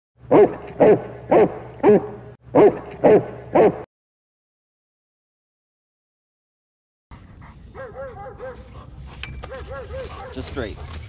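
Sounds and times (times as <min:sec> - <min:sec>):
dog barking: 0:00.3 - 0:03.9, 0:07.7 - 0:08.7, 0:09.4 - 0:10.9.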